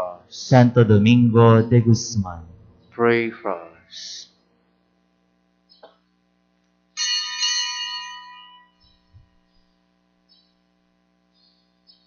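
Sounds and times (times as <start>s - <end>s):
small high-pitched bell ringing: 7.0s - 9.1s.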